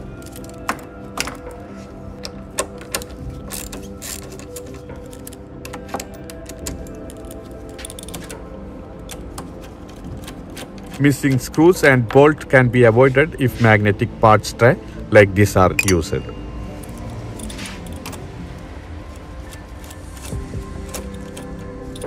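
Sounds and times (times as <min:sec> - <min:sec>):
background music: 0:00.0 - 0:22.0
socket ratchet clicking: 0:16.8 - 0:22.0.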